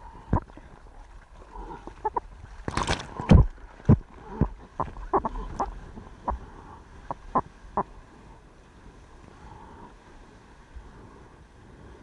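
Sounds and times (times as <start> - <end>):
rush of moving water: 0.0 - 12.0
water slapping surfboard: 0.3 - 8.0.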